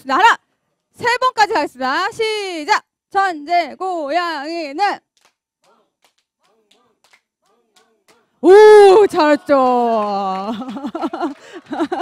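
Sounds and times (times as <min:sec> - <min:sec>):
faint hand claps: 0:05.0 - 0:08.3, 0:09.9 - 0:12.0.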